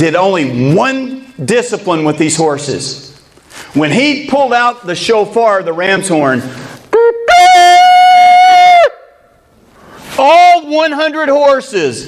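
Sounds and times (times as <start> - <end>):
blowing into cupped hands: 6.5 - 8.9.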